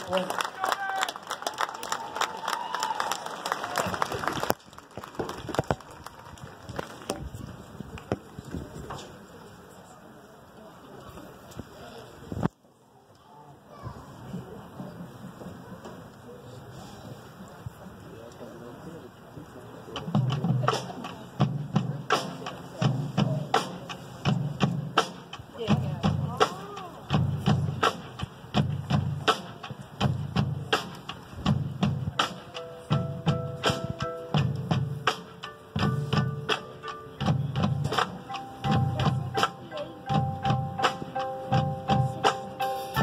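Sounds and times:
drum low thuds: 0:20.0 - 0:43.0.

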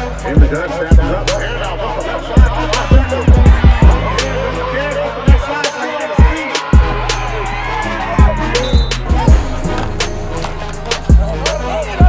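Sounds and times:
person rapping: 0:00.0 - 0:06.9
hip hop backing music: 0:00.0 - 0:12.0.

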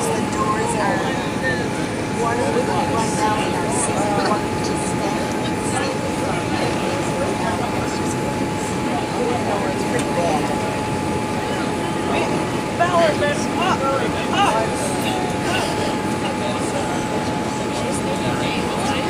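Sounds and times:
aircraft cabin engine rush: 0:00.0 - 0:19.0
passengers talking faintly: 0:00.0 - 0:19.0.

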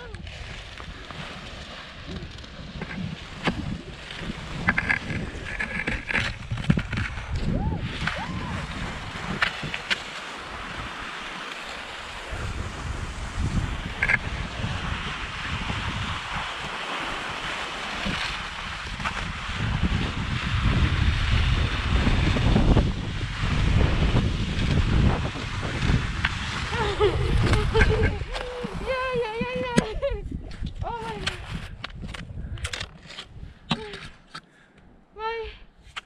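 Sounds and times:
wind buffeting microphone: 0:00.0 - 0:34.2
light clicks and scrapes: 0:02.1 - 0:07.2.

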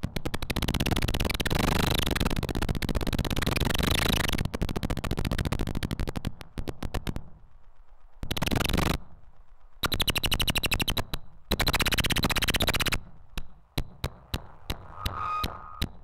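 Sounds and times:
rapid trains of sharp clicks: 0:00.0 - 0:07.4, 0:08.1 - 0:09.0, 0:09.8 - 0:14.8
thin high electronic tone: 0:14.8 - 0:16.0.

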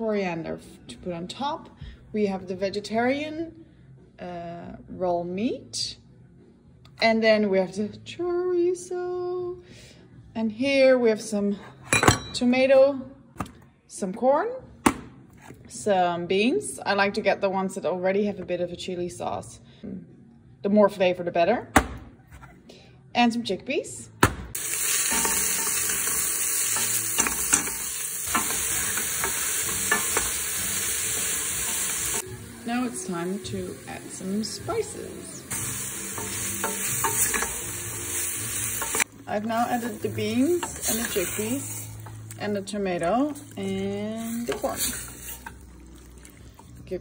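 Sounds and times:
vegetables sizzling in pot: 0:24.5 - 0:42.6, 0:43.2 - 0:46.8.

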